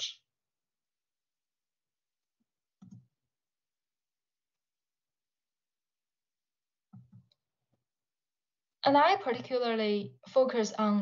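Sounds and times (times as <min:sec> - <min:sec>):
computer mouse click: 0:02.8 - 0:03.1.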